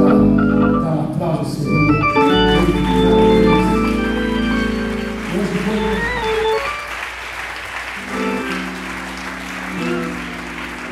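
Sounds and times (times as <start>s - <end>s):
organ playing held chords: 0.0s - 10.9s
congregation applauding: 2.0s - 10.9s.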